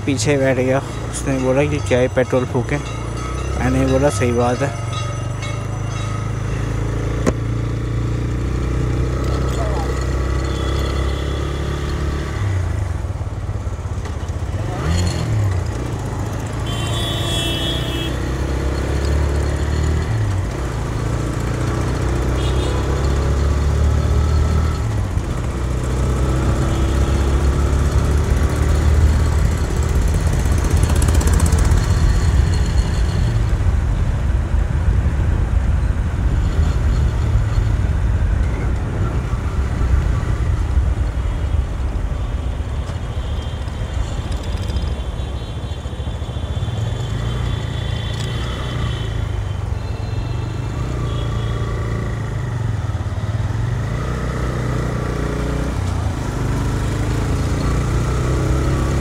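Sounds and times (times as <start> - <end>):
motorcycle engine droning: 0.2 - 33.8.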